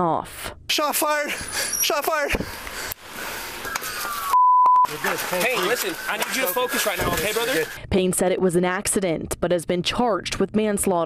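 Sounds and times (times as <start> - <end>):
censor bleep: 3.2 - 7.8.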